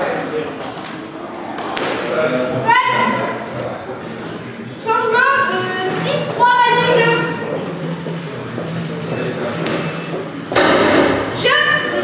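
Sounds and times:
indistinct background voices: 3.3 - 12.0
burst of noise: 10.5 - 11.4
sharp knock: 10.5 - 11.4.

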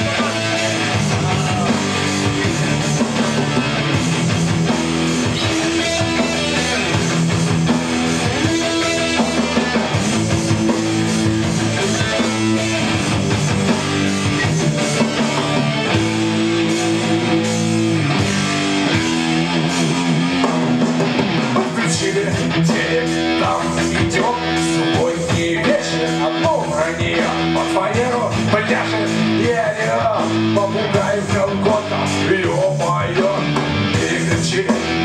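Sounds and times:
electric guitar strumming chords: 0.0 - 35.0
live rock band: 0.0 - 35.0.

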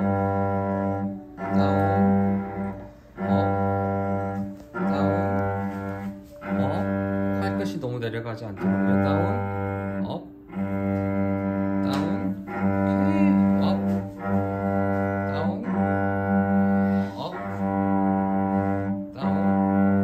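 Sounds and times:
cello holding low note: 0.0 - 20.0.

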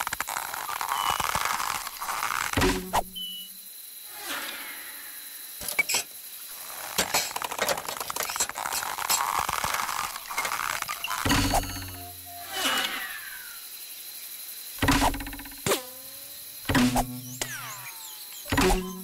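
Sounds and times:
falling whistle: 11.8 - 13.0.

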